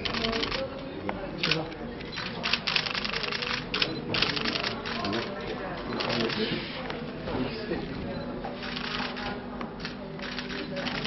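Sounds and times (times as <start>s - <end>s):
camera shutters clicking in bursts: 1.4s - 5.3s, 5.9s - 6.5s, 8.7s - 11.0s.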